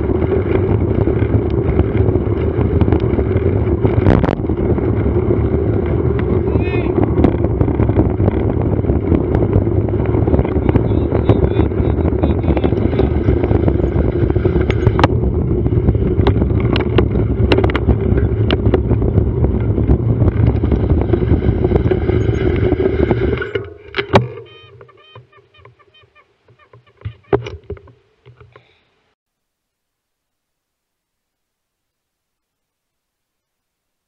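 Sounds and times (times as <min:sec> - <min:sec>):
wind and road rumble: 0:00.0 - 0:28.8
bicycle clicks and rattles: 0:12.7 - 0:24.3.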